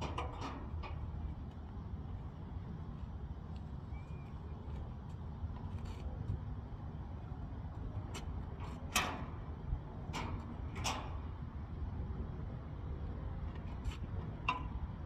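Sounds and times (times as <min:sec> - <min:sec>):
metal clanks and knocks: 0:00.0 - 0:01.3, 0:08.6 - 0:11.4.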